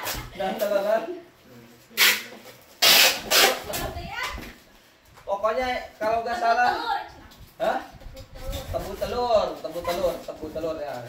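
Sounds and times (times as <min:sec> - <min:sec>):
packing tape pulled from dispenser: 0:01.9 - 0:03.9.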